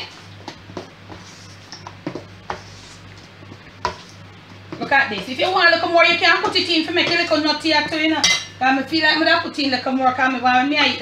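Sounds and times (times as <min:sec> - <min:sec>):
spoon stirring thick batter: 0:00.0 - 0:08.4.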